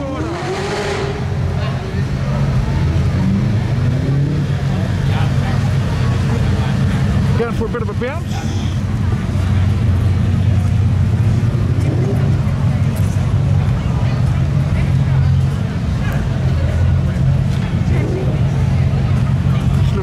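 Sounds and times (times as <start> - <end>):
crowd chatter: 0.0 - 20.0
car engine idling: 4.5 - 20.0.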